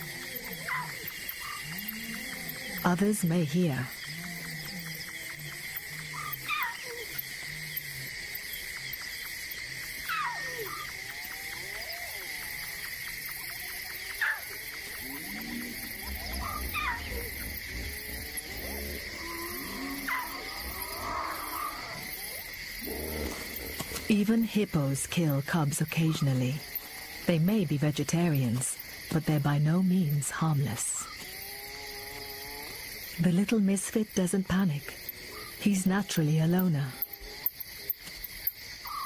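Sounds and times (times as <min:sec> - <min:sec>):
night insects chirring: 0:00.0 - 0:39.0
lion cub crying: 0:15.1 - 0:22.4.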